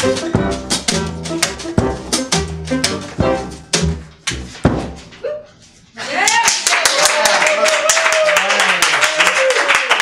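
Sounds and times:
audience whooping and cheering: 5.2s - 10.0s
audience clapping: 6.1s - 10.0s.

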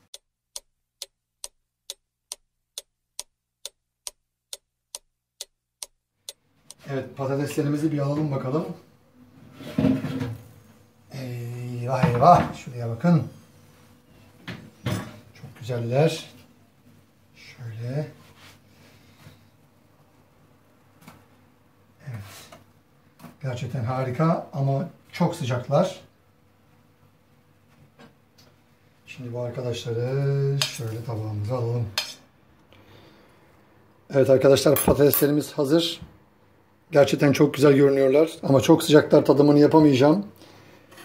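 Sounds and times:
clock ticking: 0.0s - 6.8s.

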